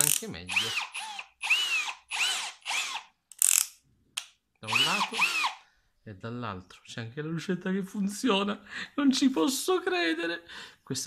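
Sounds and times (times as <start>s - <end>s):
drill rattling burst: 0.0s - 3.6s, 4.7s - 5.6s
cordless drill motor whining: 0.5s - 3.6s, 4.7s - 5.6s.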